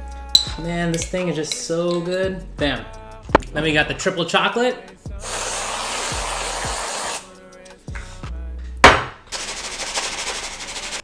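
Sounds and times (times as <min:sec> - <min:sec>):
aerosol can hissing: 0:05.2 - 0:07.3, 0:09.3 - 0:11.0
sharp knock: 0:08.8 - 0:09.2.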